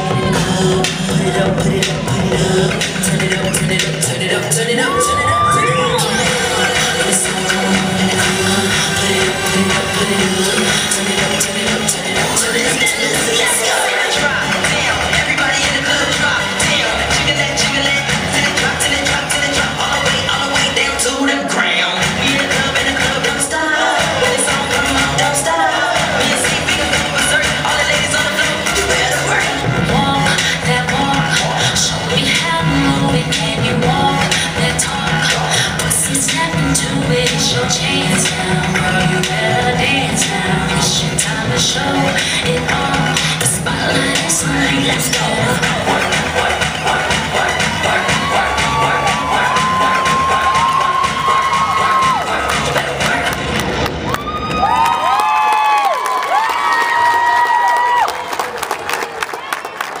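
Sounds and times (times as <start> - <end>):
crowd cheering and screaming: 0.0 - 1.0, 4.6 - 7.1, 47.2 - 60.0
dance music with steady beat: 0.0 - 58.1.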